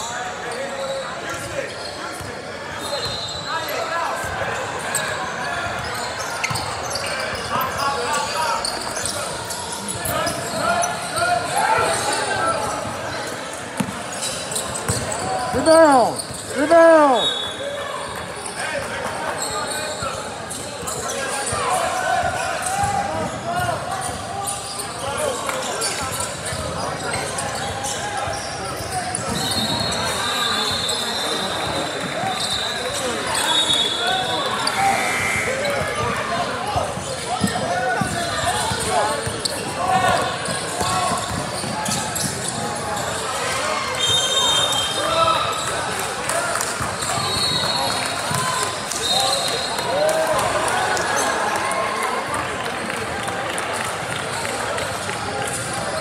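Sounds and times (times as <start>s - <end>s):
chatter of people: 0.0s - 56.0s.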